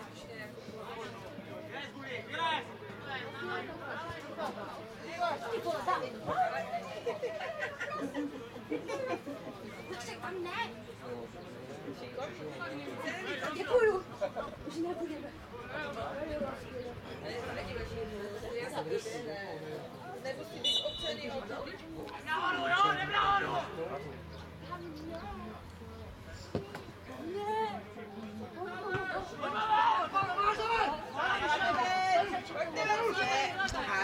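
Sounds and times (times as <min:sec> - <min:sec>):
indistinct talk of people: 0:00.0 - 0:34.0.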